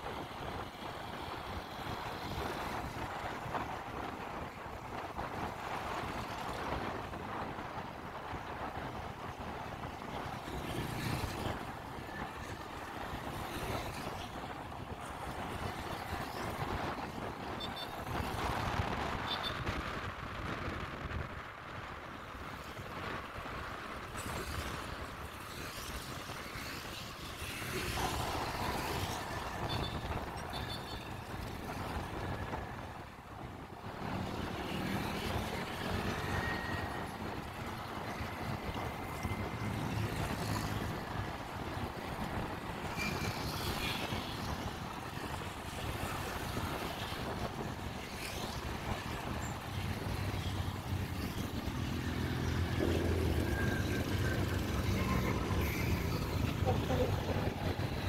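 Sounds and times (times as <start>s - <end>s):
surrounding traffic: 0.0s - 58.0s
wind noise on microphone: 0.0s - 58.0s.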